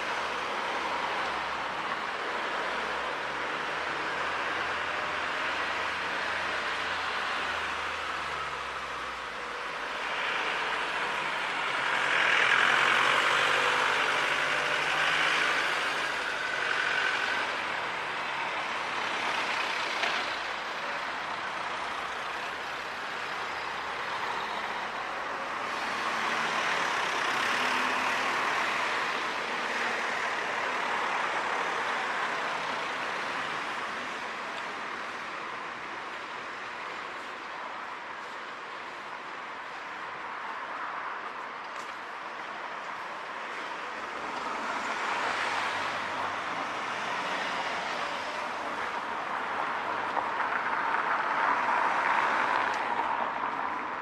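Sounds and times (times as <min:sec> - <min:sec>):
cars driving past: 0:00.0 - 0:39.1, 0:39.8 - 0:54.0.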